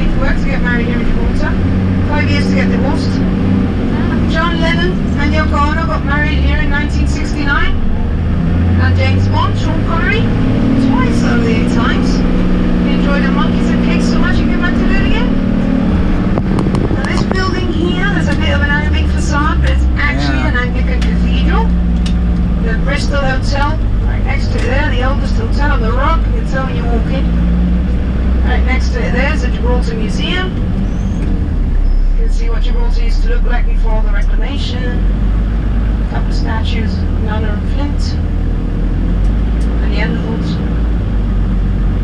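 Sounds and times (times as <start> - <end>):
engine and road noise inside vehicle: 0.0 - 42.0
indistinct talking: 8.8 - 21.9.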